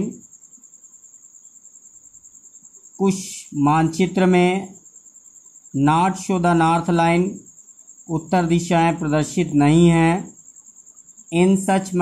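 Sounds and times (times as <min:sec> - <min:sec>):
insect trilling: 0:00.0 - 0:12.0.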